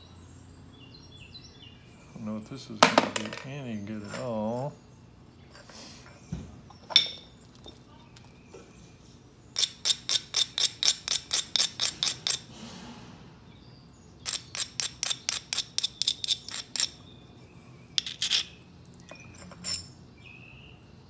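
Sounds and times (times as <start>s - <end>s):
stone scratching on stone: 9.6s - 12.5s, 14.2s - 17.0s, 18.0s - 18.6s.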